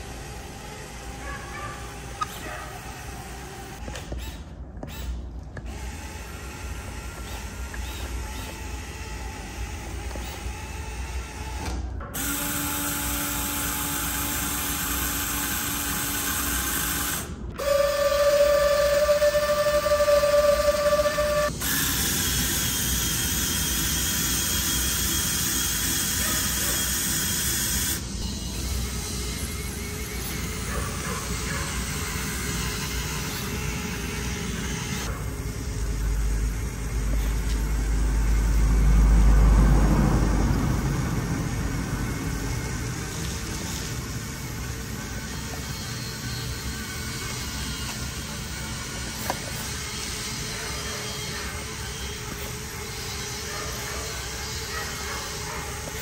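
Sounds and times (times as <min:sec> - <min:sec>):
small electric motors whining: 0:00.0 - 0:56.0.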